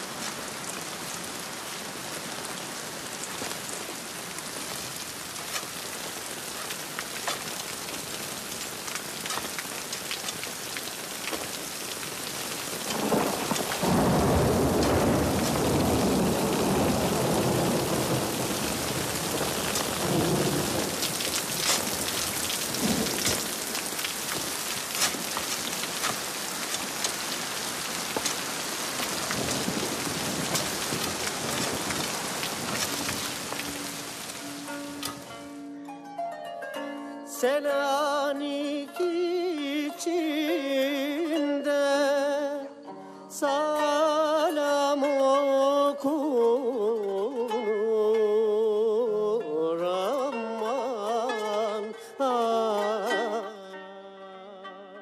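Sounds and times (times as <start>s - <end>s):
rain falling: 0.0s - 36.0s, 50.0s - 53.8s
thunder rumbling: 11.5s - 35.2s.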